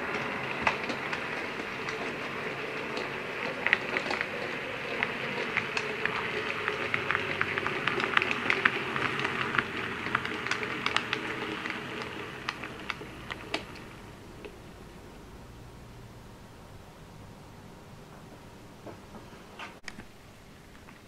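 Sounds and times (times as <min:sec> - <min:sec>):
model train wheels clicking on rails: 0:00.0 - 0:16.1.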